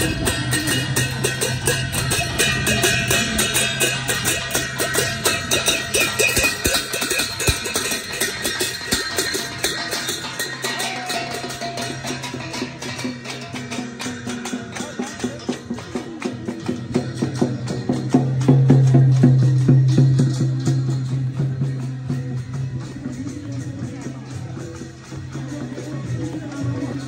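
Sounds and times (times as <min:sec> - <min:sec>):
brass gongs beaten rhythmically: 0:00.0 - 0:27.0
drumbeats: 0:00.0 - 0:27.0.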